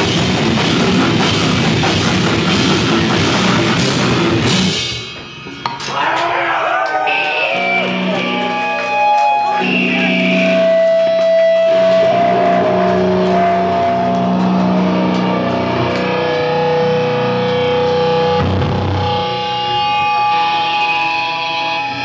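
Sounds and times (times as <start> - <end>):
distorted electric guitars: 0.0 - 22.0.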